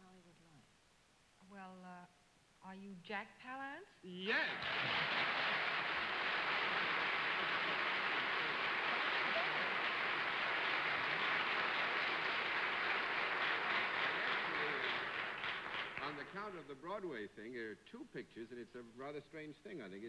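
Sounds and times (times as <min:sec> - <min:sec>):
studio audience applauding: 0:04.3 - 0:16.8.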